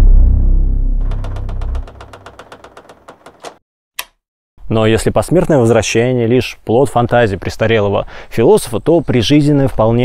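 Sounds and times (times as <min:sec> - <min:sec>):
sharp click: 0:01.0 - 0:04.2.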